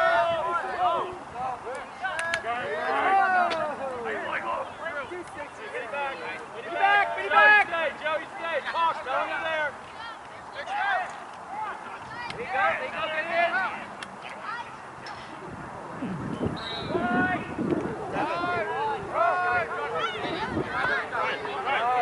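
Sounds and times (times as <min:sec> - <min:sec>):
people shouting and calling out: 0:00.0 - 0:15.6, 0:16.7 - 0:22.0.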